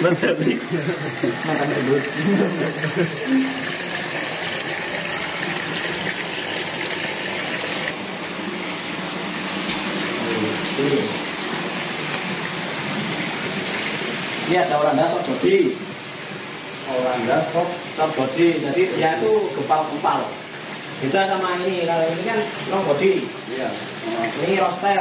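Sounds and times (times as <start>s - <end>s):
running splashing water: 0.0s - 25.0s.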